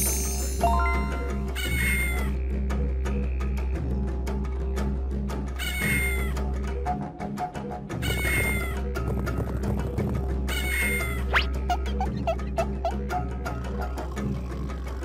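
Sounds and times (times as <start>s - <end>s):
children's music with steady beat: 0.0s - 2.3s
cat meowing: 1.6s - 2.3s, 5.6s - 6.3s, 8.1s - 8.7s.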